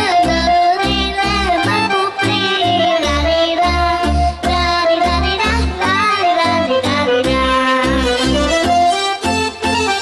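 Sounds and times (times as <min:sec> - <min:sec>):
folk music with pulsing bass beat: 0:00.0 - 0:10.0.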